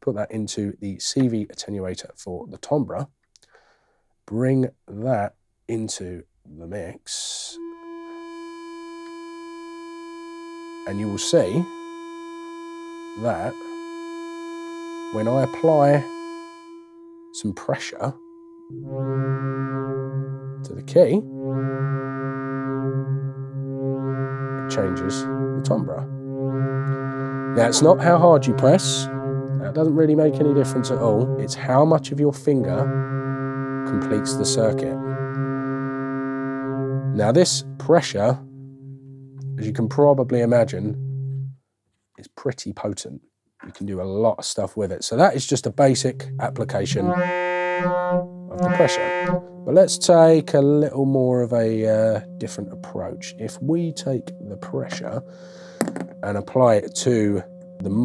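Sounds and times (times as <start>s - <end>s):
synthesizer steady tone: 7.5s - 41.6s, 45.2s - 58.0s.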